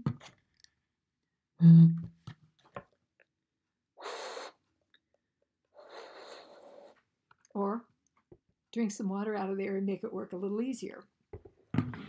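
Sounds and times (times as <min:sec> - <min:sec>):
breath blown across bottle: 0:04.0 - 0:04.7, 0:05.7 - 0:07.0.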